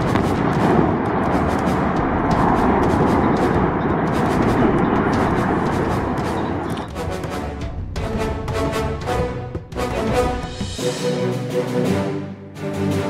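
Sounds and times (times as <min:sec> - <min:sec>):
rumble of collapsing structure: 0:00.0 - 0:07.0
dense crackling: 0:00.0 - 0:10.0.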